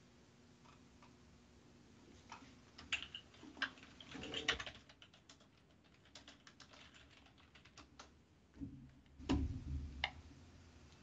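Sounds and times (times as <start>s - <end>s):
computer keyboard typing: 2.8s - 8.2s.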